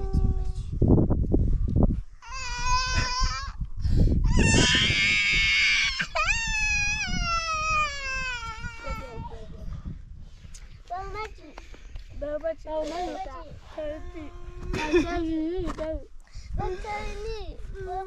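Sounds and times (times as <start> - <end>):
child crying: 2.2 - 3.6, 4.2 - 9.4, 13.8 - 15.5.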